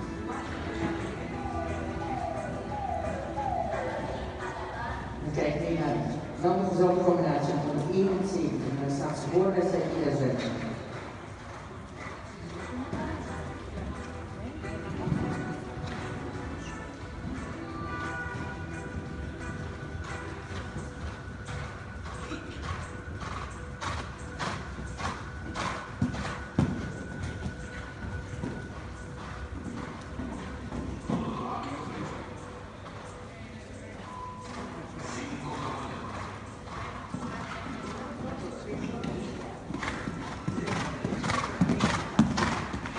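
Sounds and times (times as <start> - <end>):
horse hoofbeats on sand: 10.4 - 33.2, 36.1 - 42.9.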